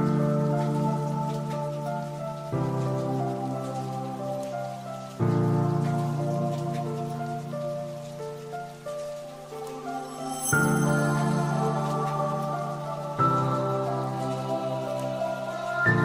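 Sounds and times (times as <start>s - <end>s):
calm music of sustained chords: 0.0s - 16.0s
soft rain-like hiss: 0.0s - 16.0s.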